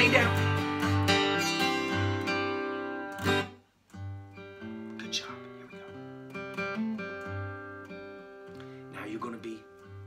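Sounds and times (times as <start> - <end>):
acoustic guitar strummed: 0.0 - 10.0.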